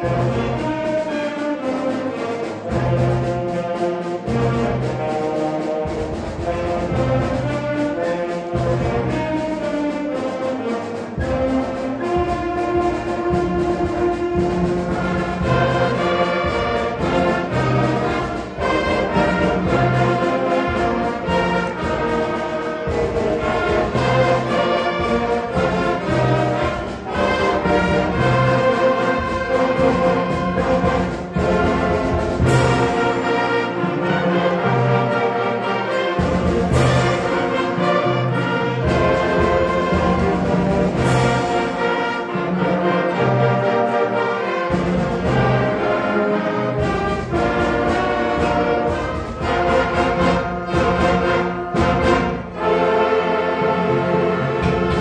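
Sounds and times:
concert band playing: 0.0s - 55.0s.

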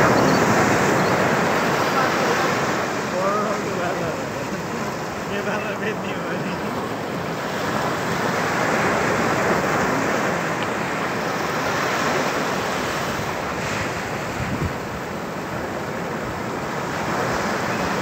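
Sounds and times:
waves washing up a beach: 0.0s - 18.0s.

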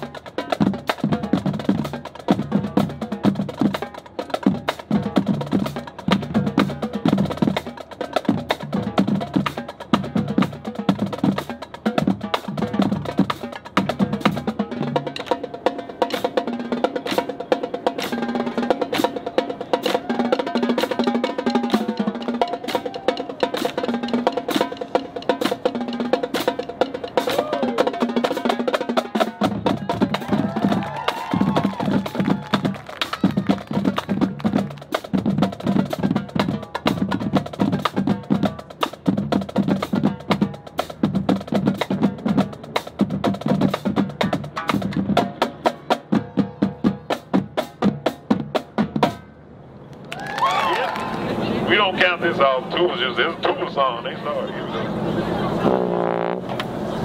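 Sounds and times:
drums and mallet percussion: 0.0s - 49.3s
marching band playing: 0.0s - 49.6s, 50.4s - 57.0s.

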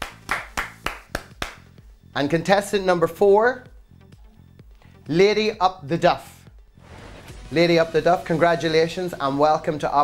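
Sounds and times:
sharp hand claps: 0.0s - 1.8s.

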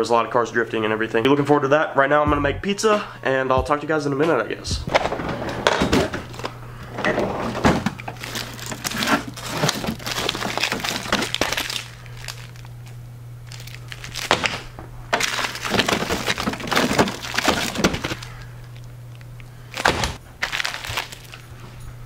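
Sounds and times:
frozen packs knocking together: 4.9s - 21.5s
plastic packaging crinkling: 5.8s - 21.9s.

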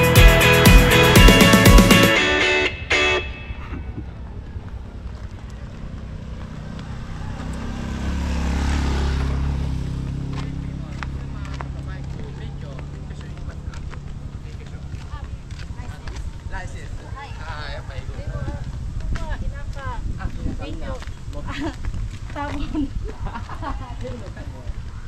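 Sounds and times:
motorcycle passing: 0.0s - 25.0s.

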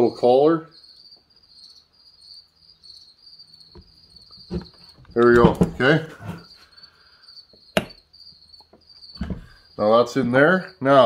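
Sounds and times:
cricket chirping: 0.0s - 11.0s
light knocks of parts on bench: 7.8s - 8.0s.

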